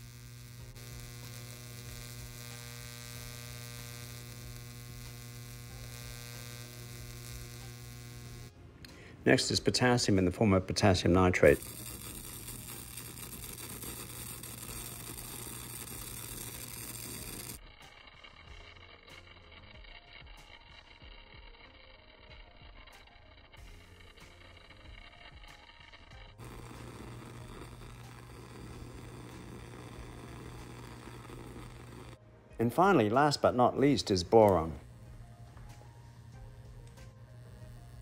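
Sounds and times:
plasma flame hissing: 0.0 - 8.5, 9.3 - 21.6, 22.2 - 32.2, 32.8 - 38.0
low hum: 0.0 - 9.3, 11.4 - 38.0.

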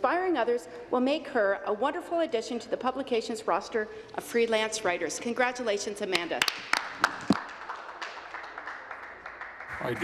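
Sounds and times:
hands clapping: 6.1 - 10.0.

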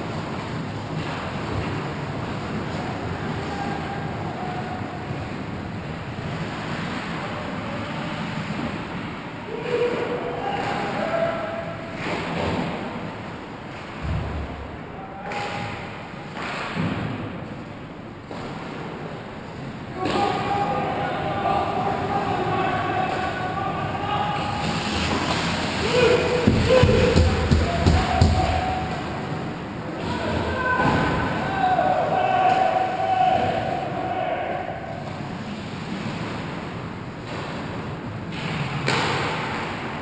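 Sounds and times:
knocks and scrapes of hockey sticks: 24.6 - 28.9.

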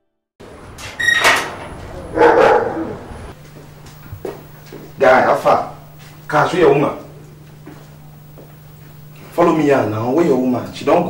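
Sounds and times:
faint steady hum: 0.4 - 11.0
dog barking: 2.1 - 3.1.

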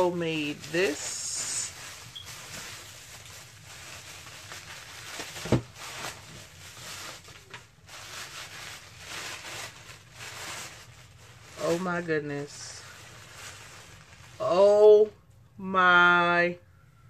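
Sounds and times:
bubble wrap and paper crinkling: 0.0 - 15.1.

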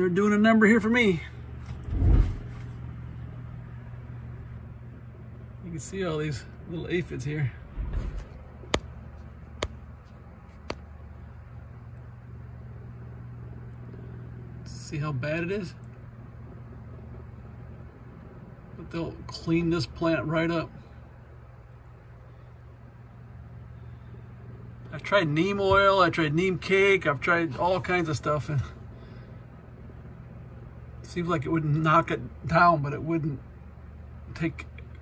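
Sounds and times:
steady low hum: 0.0 - 35.0
low rumbling thump: 1.8 - 2.6, 7.6 - 8.9.

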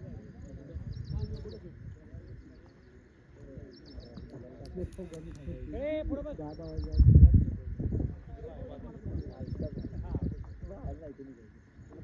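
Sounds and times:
wind rumbling on microphone: 0.0 - 12.0
small bird chirping: 0.4 - 5.8
sharp clicks: 4.2 - 5.6.

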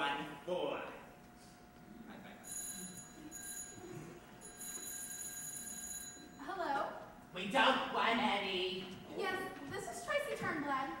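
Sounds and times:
faint steady hum: 0.0 - 11.0
telephone ringing: 2.4 - 6.4.

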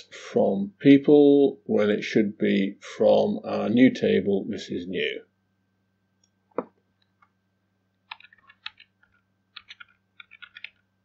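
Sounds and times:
computer keyboard key clicks: 8.1 - 10.8.

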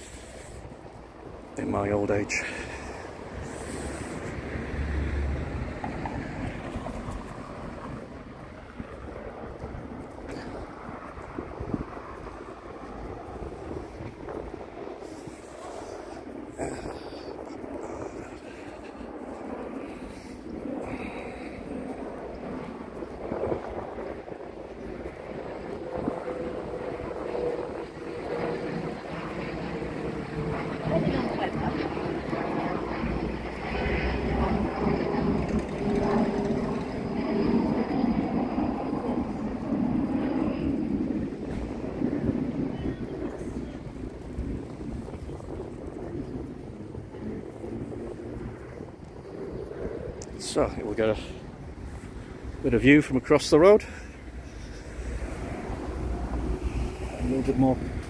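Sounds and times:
vehicle engine passing: 3.6 - 7.4.

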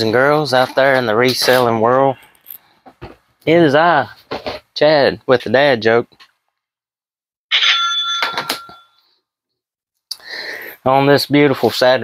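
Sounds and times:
short bell-like ring: 7.5 - 9.1.

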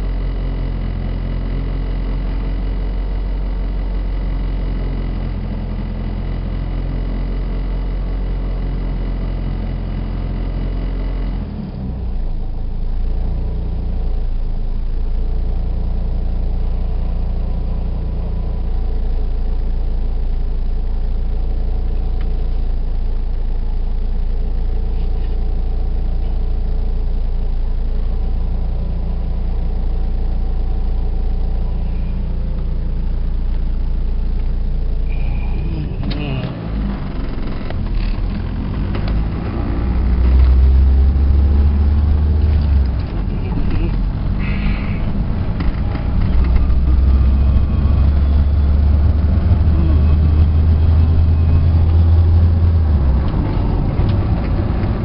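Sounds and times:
car engine idling: 0.0 - 55.0
thin steady whine: 16.2 - 55.0.

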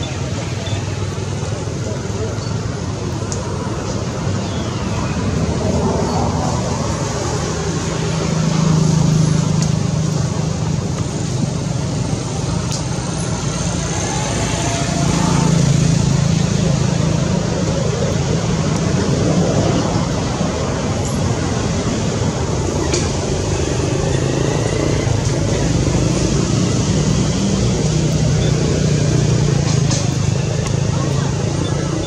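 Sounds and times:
road traffic rumble: 0.0 - 32.0.

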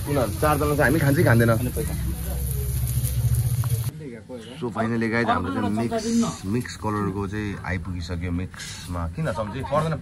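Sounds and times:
patties sizzling on a griddle: 0.0 - 3.9, 5.6 - 10.0
low rumble: 1.5 - 3.9.

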